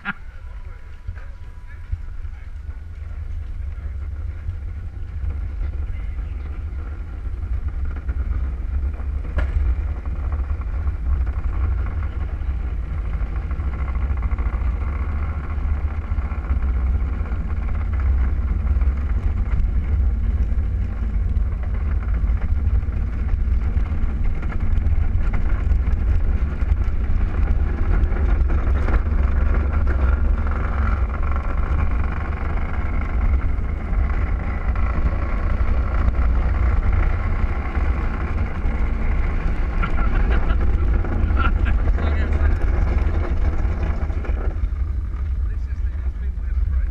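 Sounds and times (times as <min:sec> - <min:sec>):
plastic wheels rolling on concrete: 0:01.1 - 0:45.9.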